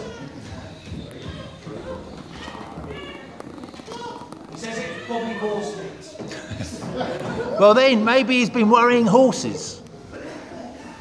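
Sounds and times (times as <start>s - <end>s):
talk in hall: 0.0s - 11.0s.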